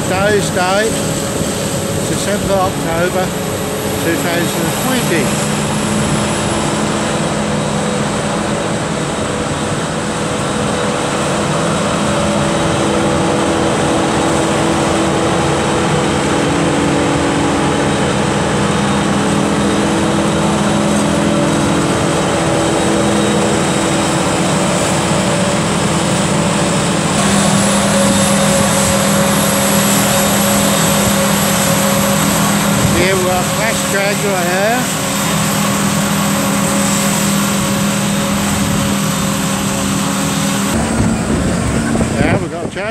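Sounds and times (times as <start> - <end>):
faint high whine: 0.0 - 42.9
heavy engine drone: 0.0 - 42.9
tractor running: 0.0 - 42.9.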